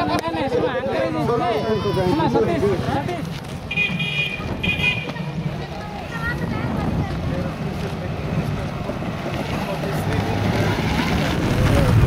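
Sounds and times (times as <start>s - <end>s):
motorcycle engine approaching: 5.2s - 12.0s.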